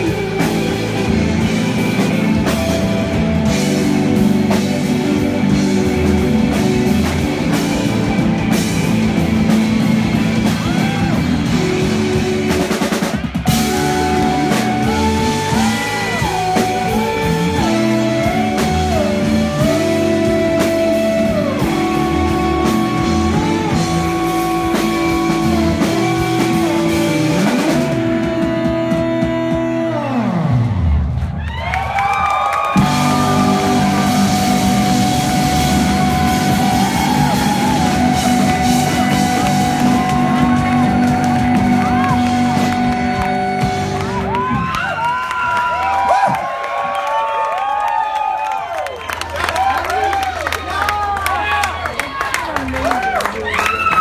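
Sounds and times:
rock band playing: 0.0s - 54.0s
crowd cheering and whooping: 8.0s - 12.9s, 13.5s - 23.8s, 30.5s - 54.0s
falling pitch sweep: 13.5s - 28.9s, 30.0s - 46.4s.

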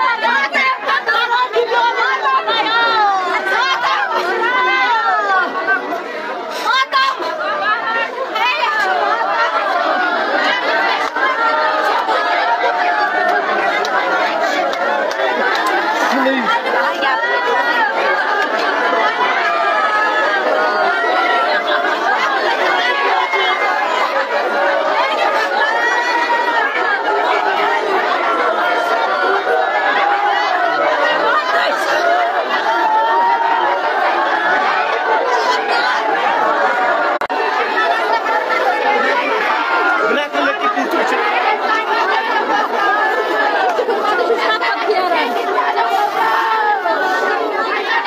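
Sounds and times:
crowd talking and calling out: 0.0s - 48.0s.

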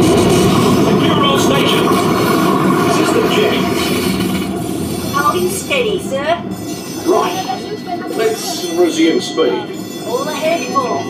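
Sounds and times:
steady mechanical rumble: 0.0s - 10.6s.

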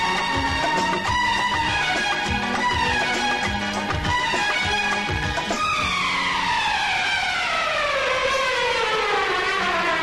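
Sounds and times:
siren-like tone gliding downward: 4.2s - 10.0s.

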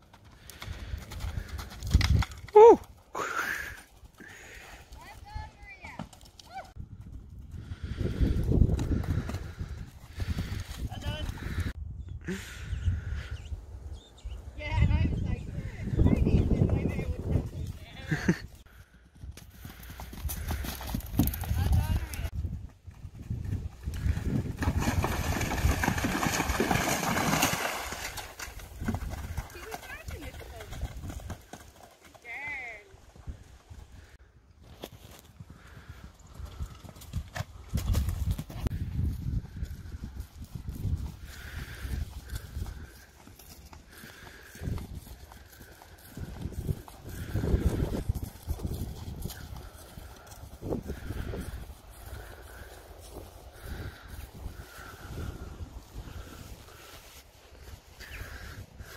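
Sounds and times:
wind rumbling on microphone: 0.4s - 2.6s, 6.6s - 31.5s, 35.2s - 58.9s
horse hoofbeats on grass: 16.8s - 33.7s, 34.8s - 55.1s
horse splashing through water: 24.6s - 30.8s.

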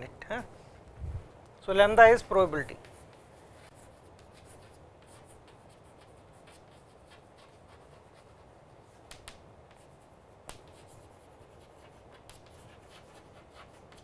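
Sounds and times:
chalk writing on chalkboard: 2.7s - 14.0s.

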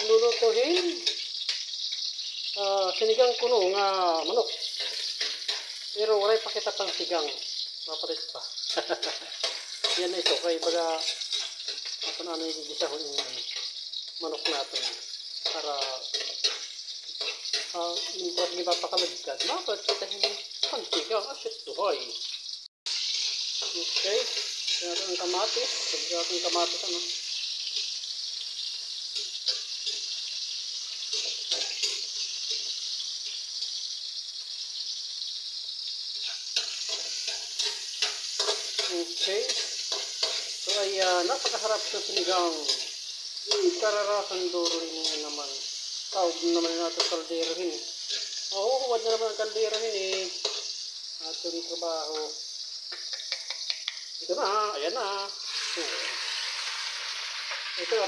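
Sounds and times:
metal spatula scraping a pan: 0.0s - 21.3s, 22.9s - 34.0s, 36.1s - 53.8s, 55.3s - 58.0s
vegetables sizzling in hot oil: 0.0s - 58.0s.

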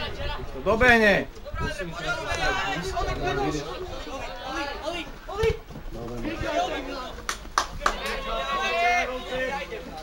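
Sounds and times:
spectators talking: 0.0s - 10.0s
sharp claps: 7.2s - 8.2s.

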